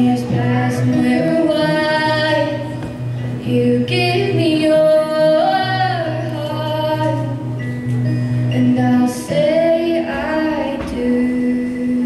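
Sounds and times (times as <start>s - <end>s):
girl singing: 0.0s - 2.8s, 3.4s - 7.5s, 8.5s - 12.0s
strummed acoustic guitar: 0.0s - 12.0s.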